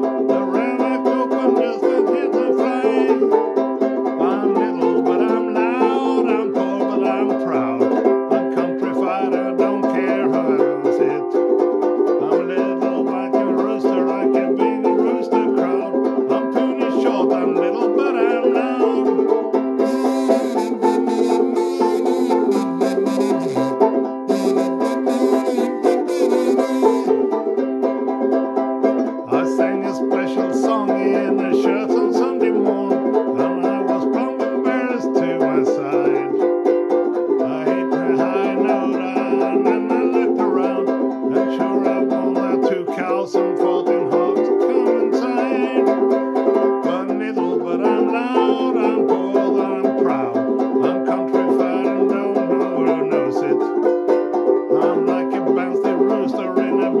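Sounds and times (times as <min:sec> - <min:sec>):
banjo ukulele strumming: 0:00.0 - 0:57.0
harmonica playing melody: 0:18.3 - 0:27.8.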